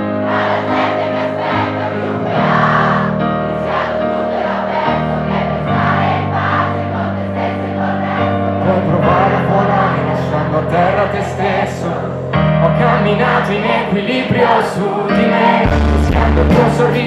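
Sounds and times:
crowd singing along: 0.0 - 17.0
live pop band music: 8.7 - 17.0.

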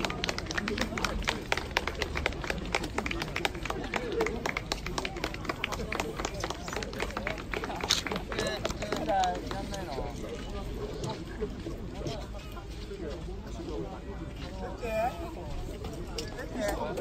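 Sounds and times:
people talking outdoors: 0.0 - 17.0.

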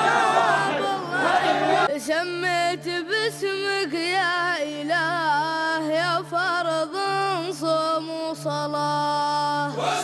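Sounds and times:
men chanting together: 0.0 - 1.9, 9.8 - 10.0.

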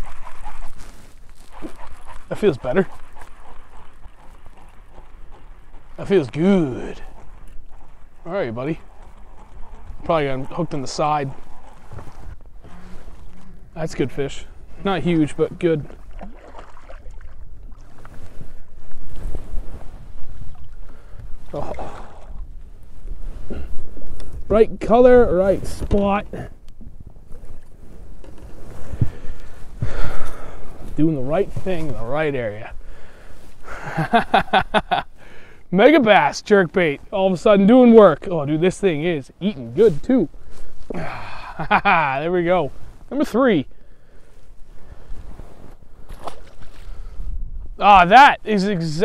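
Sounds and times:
water lapping against boat hull: 0.0 - 24.5, 25.6 - 33.8, 43.7 - 47.7
low rumble of wind: 0.0 - 49.0.

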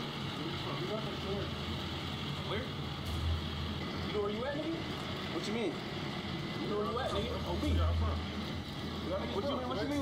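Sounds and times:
men talking outdoors: 0.0 - 10.0
low vehicle hum: 1.5 - 9.4.

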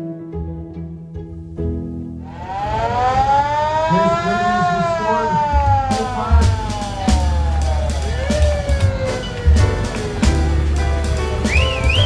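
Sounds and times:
fire engine siren wailing: 2.2 - 12.0.

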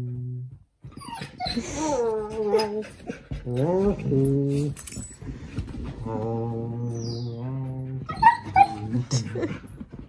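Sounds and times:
dog yipping: 8.1 - 8.9.

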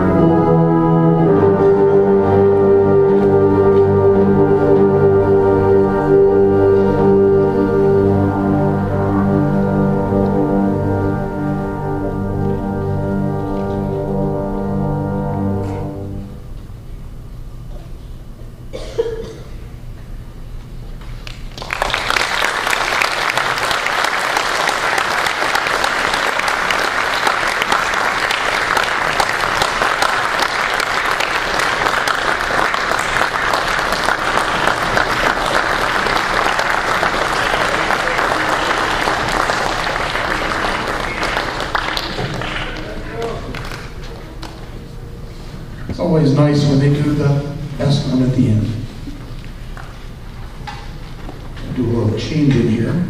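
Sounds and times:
concert band low note: 0.0 - 16.7
audience applause: 21.2 - 44.8.

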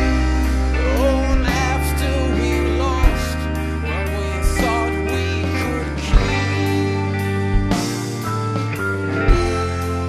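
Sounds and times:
live rock band playing: 0.0 - 10.0
drum hits: 7.5 - 8.3.

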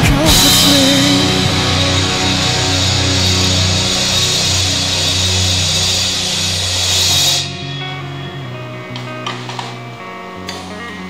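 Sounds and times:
drums and crashing cymbals: 0.0 - 7.6
rock backing track guitar: 0.0 - 11.0.

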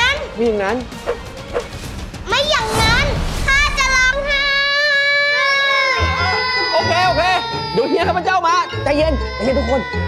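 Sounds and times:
children wailing: 4.6 - 10.0.

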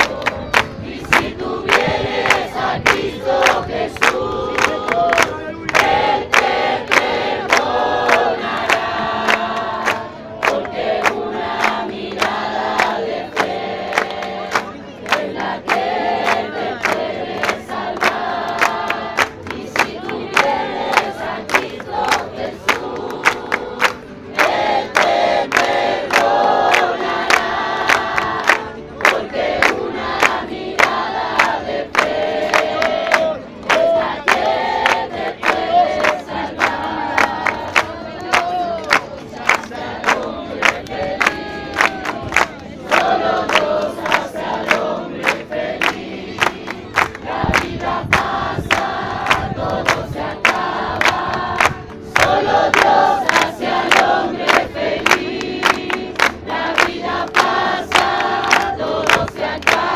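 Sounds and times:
congregation singing: 0.0 - 59.9
hand-clapping on a steady beat: 0.0 - 59.9.

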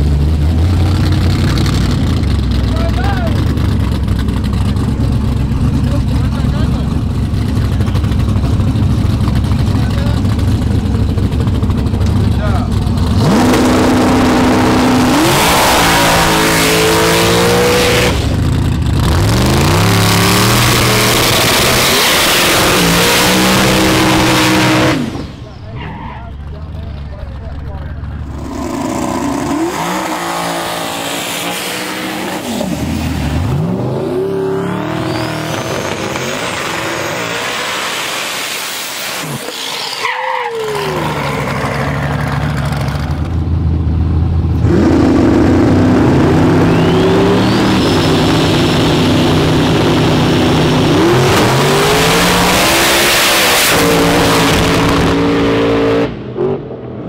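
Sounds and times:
engines idling: 0.0 - 22.1, 23.5 - 34.0, 40.6 - 51.0
car engine revving: 0.0 - 57.0
tire burnout: 0.0 - 57.0.

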